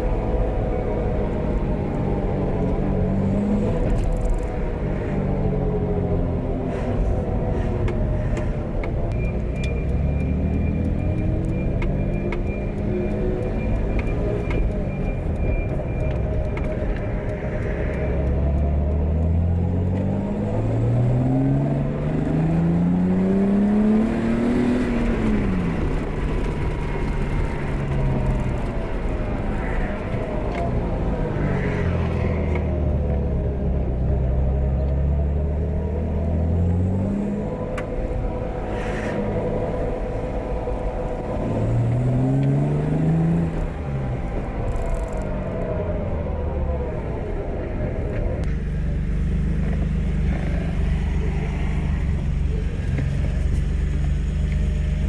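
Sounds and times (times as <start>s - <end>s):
car engine accelerating: 0.0s - 55.0s.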